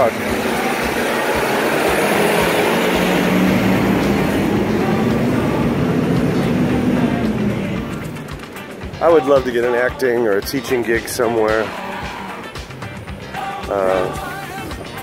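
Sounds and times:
truck engine droning: 0.0 - 15.0.

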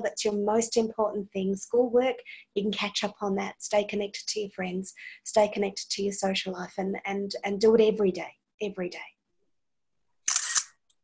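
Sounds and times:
woman speaking: 0.0 - 9.2.

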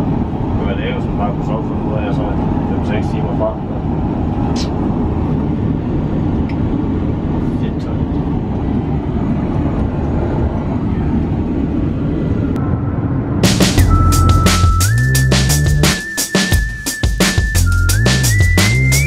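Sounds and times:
airliner cabin rushing hum: 0.0 - 16.8
electronic dance music: 13.4 - 19.0.

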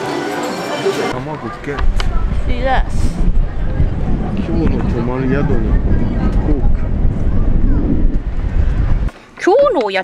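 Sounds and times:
faint voices: 0.0 - 9.1
wind buffeting microphone: 1.1 - 9.8.

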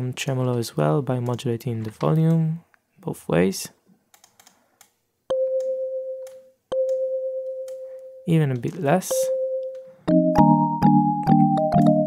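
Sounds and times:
synthesized kalimba plucked note: 9.1 - 12.0.

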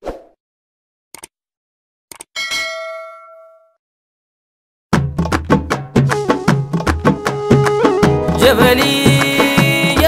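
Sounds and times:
bell-like ding: 2.4 - 3.8.

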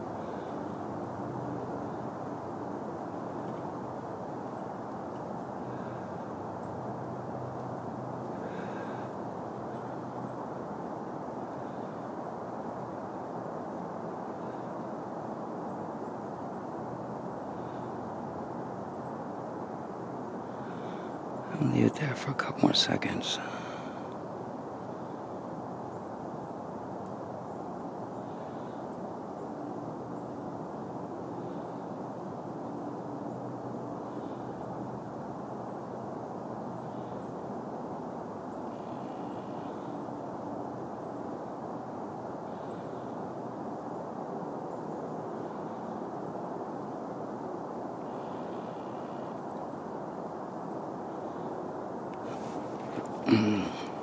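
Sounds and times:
faint hum: 0.0 - 54.0.

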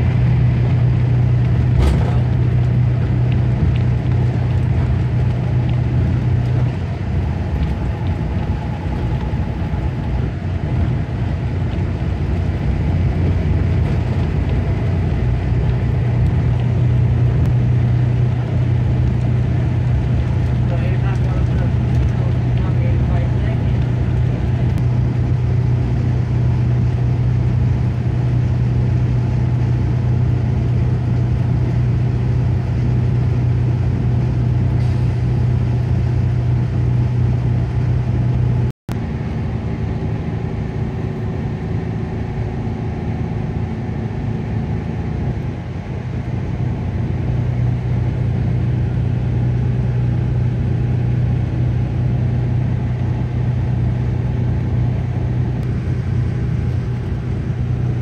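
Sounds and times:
bus engine drone: 0.0 - 58.0
low hum: 0.0 - 58.0
road noise: 0.0 - 58.0.

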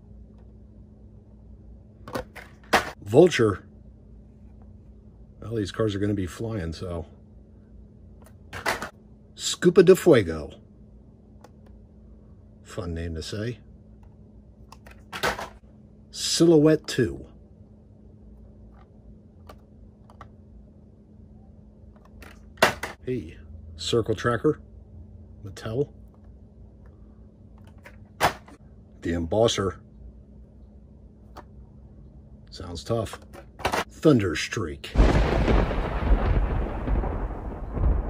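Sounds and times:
faint steady hum: 0.0 - 38.0
low rolling thunder rumble: 35.0 - 38.0
thunderclap: 35.0 - 38.0.

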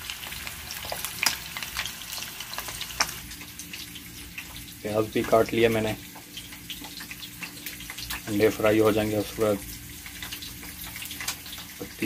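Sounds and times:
eggs sizzling in hot oil: 0.0 - 12.0.

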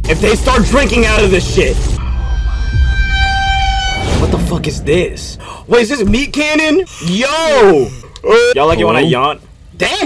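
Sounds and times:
low rumble: 0.0 - 8.2
high-pitched tone: 2.0 - 4.3.

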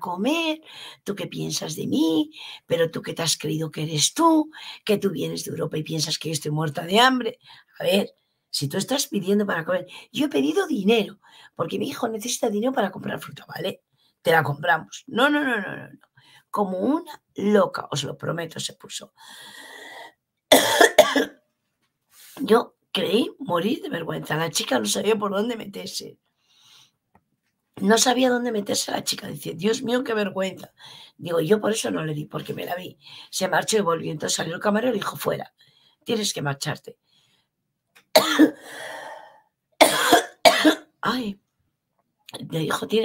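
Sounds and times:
woman coughing: 20.5 - 21.4, 38.2 - 38.8, 39.8 - 41.0.

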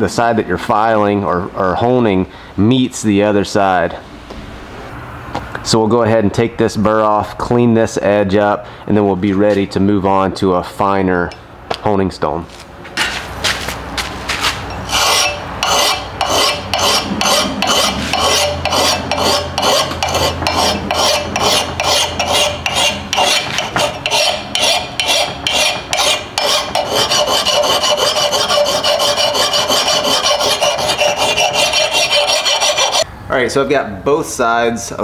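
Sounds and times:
file rasping on axe head: 14.9 - 33.1.

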